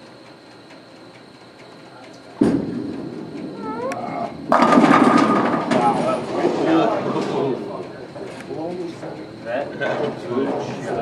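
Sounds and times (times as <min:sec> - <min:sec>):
bowling ball rolling: 0:02.4 - 0:07.7
bowling pins crashing: 0:04.3 - 0:07.4
bowling ball thud on lane: 0:04.5 - 0:06.4.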